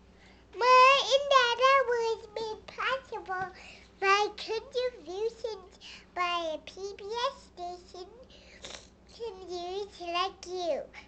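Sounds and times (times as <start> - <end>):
toddler girl sing-song voice: 0.6 - 11.0.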